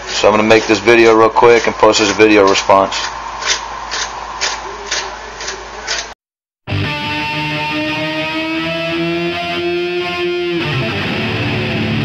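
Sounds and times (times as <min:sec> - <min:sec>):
vegetable grated on metal grater: 0:00.0 - 0:04.1.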